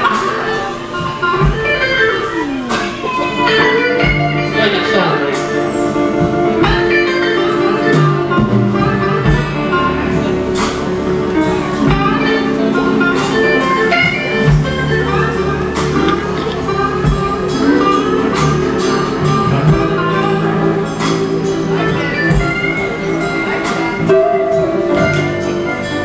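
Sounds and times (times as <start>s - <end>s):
bass line: 0.0s - 26.0s
electric keyboard playing: 0.0s - 26.0s.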